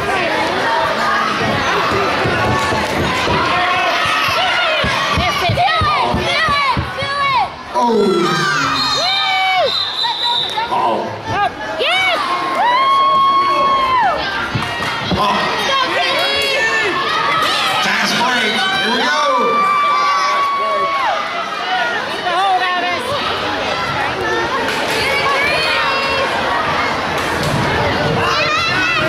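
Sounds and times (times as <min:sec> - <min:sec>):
crowd cheering and shouting: 0:00.0 - 0:29.0
children shrieking and yelling: 0:18.4 - 0:21.9.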